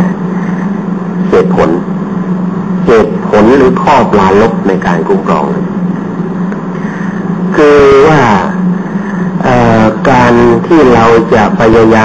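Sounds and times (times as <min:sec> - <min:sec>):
low hum with light hiss: 0:00.0 - 0:12.0
man lecturing: 0:01.2 - 0:01.9, 0:02.8 - 0:05.7, 0:07.5 - 0:08.6, 0:09.4 - 0:12.0.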